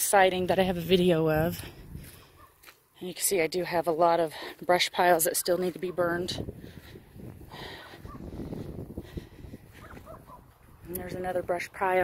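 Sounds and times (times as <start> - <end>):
footsteps on dry grass: 0.2 - 12.0.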